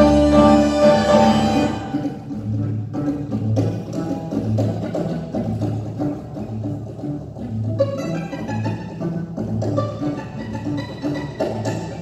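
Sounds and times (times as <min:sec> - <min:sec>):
low bass line: 0:00.0 - 0:03.6
live tango ensemble playing: 0:00.0 - 0:12.0.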